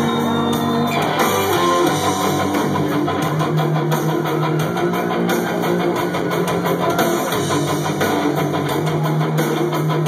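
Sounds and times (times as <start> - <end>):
bass guitar: 0.0 - 10.0
drum beat: 0.0 - 10.0
electric guitars: 0.0 - 10.0.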